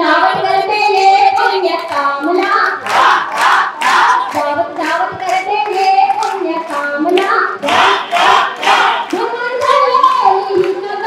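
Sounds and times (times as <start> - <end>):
woman singing through loudspeaker: 0.0 - 11.0
hands clapping in time: 1.4 - 10.8.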